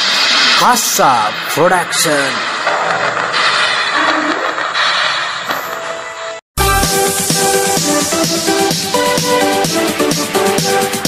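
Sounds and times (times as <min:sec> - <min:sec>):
loud steady rushing noise: 0:00.0 - 0:03.4.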